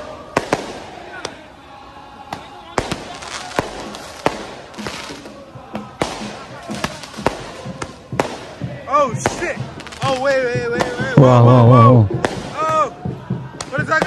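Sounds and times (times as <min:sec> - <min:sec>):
firecrackers banging: 0:00.0 - 0:01.6, 0:02.2 - 0:14.0
background voices: 0:04.7 - 0:14.0.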